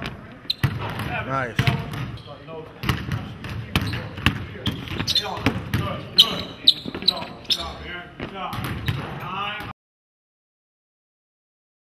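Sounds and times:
basketball bouncing on hardwood floor: 0.6s - 2.2s, 2.8s - 5.9s, 8.2s - 9.1s.

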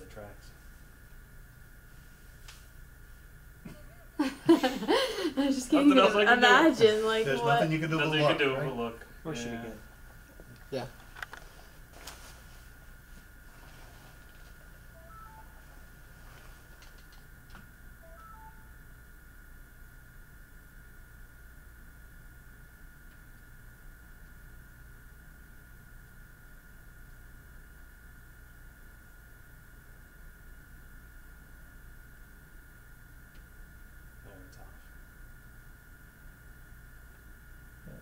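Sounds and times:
electrical hum with whine: 0.0s - 38.0s
short beeps: 15.0s - 15.6s, 18.0s - 18.7s.

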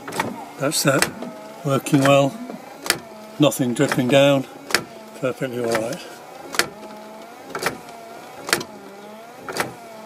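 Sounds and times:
windscreen wiper clicks: 0.0s - 10.0s
wiper motor whine: 0.0s - 10.0s.

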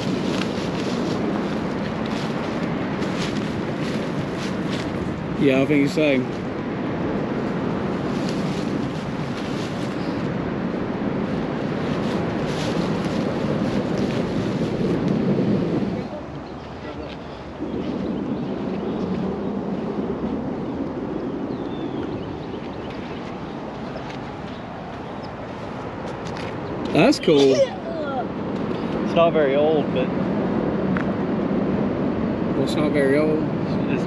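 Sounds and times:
wind rumbling on microphone: 0.0s - 34.0s.

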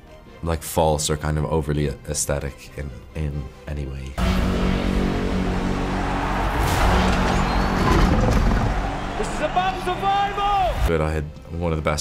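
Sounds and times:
low trailer music: 1.2s - 11.6s
rumbling sound effects: 4.2s - 9.2s.

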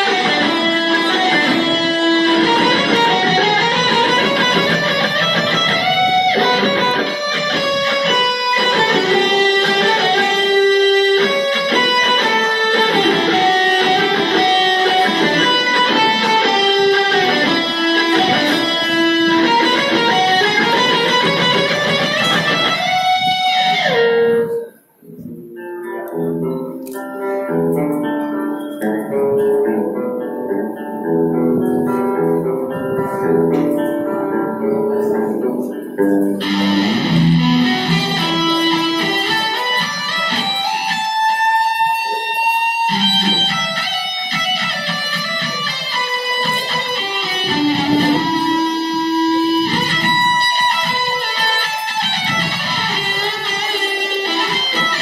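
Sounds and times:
electric guitar lead melody: 0.0s - 55.0s
rhythm guitar: 0.0s - 55.0s
soft picked guitar notes: 0.0s - 55.0s.

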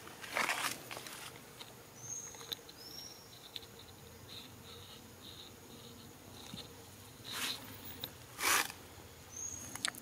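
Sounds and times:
insects chirping: 0.5s - 10.0s.

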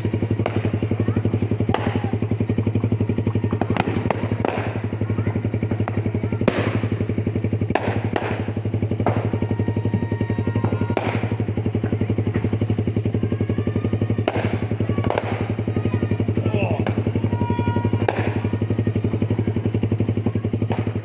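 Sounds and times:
exhaust pops: 0.0s - 21.0s
motorcycle engine idling: 0.0s - 21.0s.

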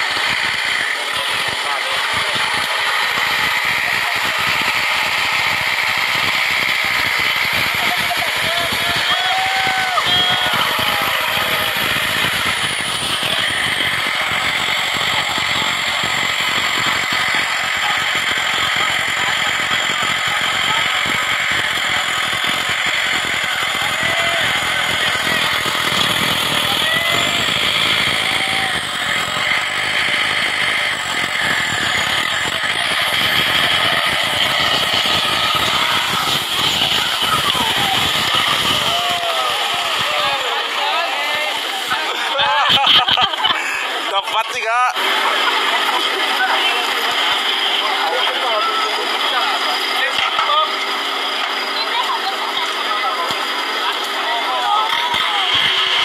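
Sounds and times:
buggy engine running hard: 0.0s - 56.0s.

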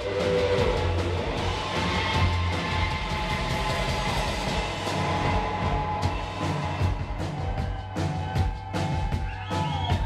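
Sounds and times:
bass guitar: 0.0s - 10.0s
drum beat: 0.0s - 10.0s.

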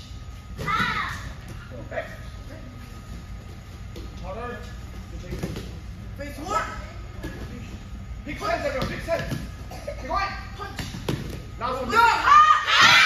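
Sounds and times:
person shouting: 11.9s - 13.0s.

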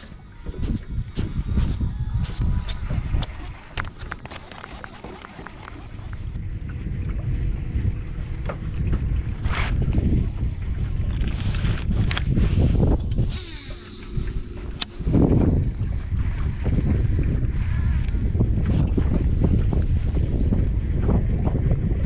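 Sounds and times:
wind buffeting microphone: 0.0s - 22.0s
fishing rod and reel clicks: 11.0s - 15.2s.

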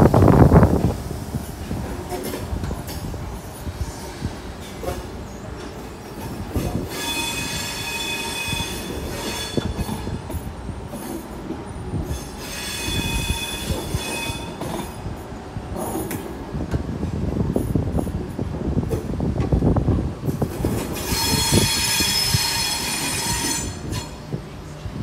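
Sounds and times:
train rumbling past: 0.0s - 25.0s
train clicks: 0.1s - 12.4s, 13.0s - 24.4s
high-pitched wheel squeal: 6.8s - 10.1s, 12.1s - 14.7s, 21.0s - 24.2s.

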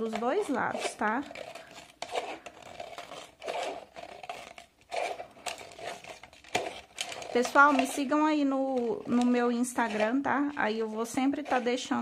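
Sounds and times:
scissors snipping plastic bottle: 0.0s - 10.3s.

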